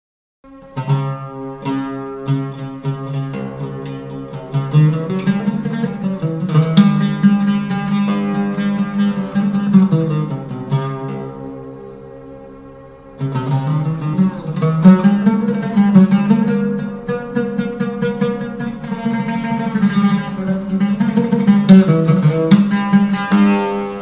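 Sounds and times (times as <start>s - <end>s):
oud playing plucked notes: 0.5s - 24.0s.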